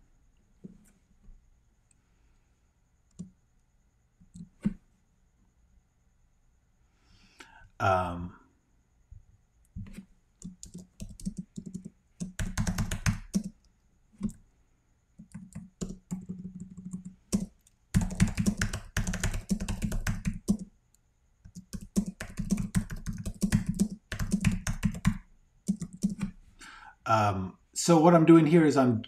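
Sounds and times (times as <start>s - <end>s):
typing on a computer keyboard: 9.8s - 14.4s, 15.2s - 20.7s, 21.4s - 26.4s.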